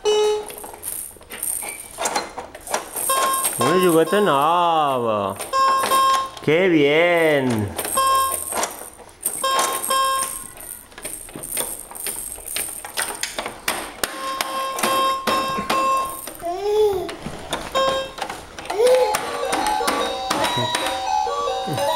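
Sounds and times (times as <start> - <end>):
electronic toy beeping tones: 3.1 - 4.6, 5.5 - 6.4, 8.0 - 8.6, 9.4 - 10.5
toy tune of stepping notes: 3.1 - 4.8, 9.4 - 10.5, 18.8 - 21.9.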